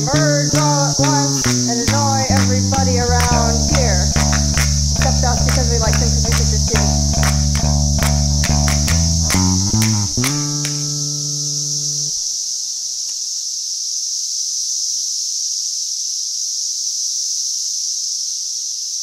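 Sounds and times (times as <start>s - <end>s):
electric bass guitar slide notes: 0.0s - 12.2s
cicadas droning: 0.0s - 19.0s.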